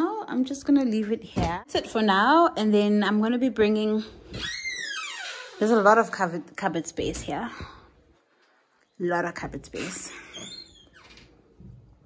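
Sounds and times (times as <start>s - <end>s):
wardrobe door scraping squeak: 4.3s - 5.8s, 10.3s - 11.4s.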